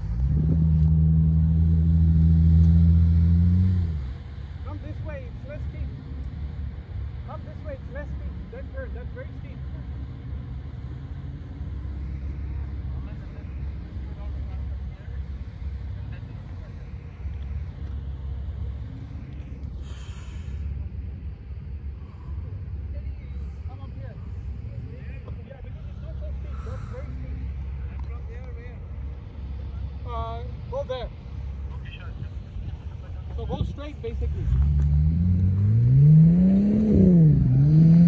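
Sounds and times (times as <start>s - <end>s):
distant car engine: 0.0s - 38.0s.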